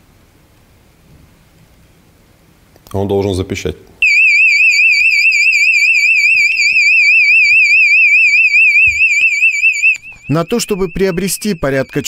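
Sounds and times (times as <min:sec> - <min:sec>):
smoke detector alarm warbling: 0:04.0 - 0:12.0.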